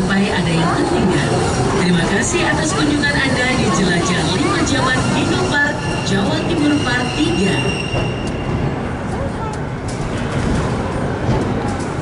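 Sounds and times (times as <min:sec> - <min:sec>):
ride car rumbling on track: 0:00.0 - 0:12.0.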